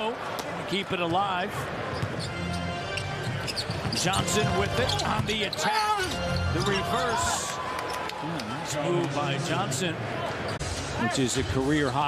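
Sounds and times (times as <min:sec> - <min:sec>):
crowd noise: 0:00.0 - 0:12.0
arena music: 0:02.1 - 0:07.5.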